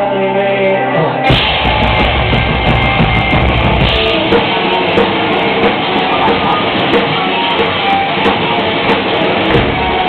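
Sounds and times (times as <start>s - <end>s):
distorted live rock band: 0.0s - 10.0s.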